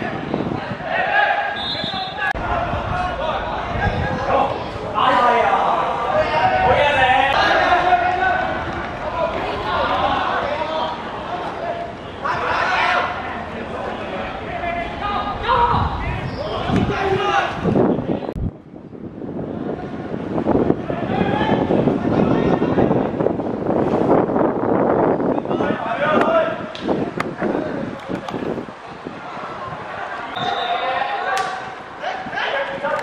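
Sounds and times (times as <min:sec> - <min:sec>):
players shouting: 0:00.0 - 0:18.2.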